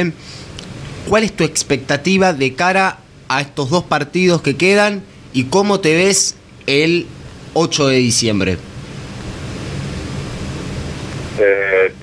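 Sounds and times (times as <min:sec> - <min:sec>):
man speaking: 0:01.1 - 0:08.6, 0:11.4 - 0:12.0.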